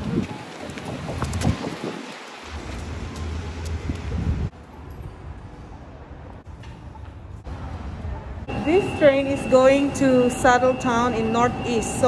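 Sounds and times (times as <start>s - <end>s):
wind buffeting microphone: 0.0s - 6.5s
traffic rumble: 0.0s - 12.0s.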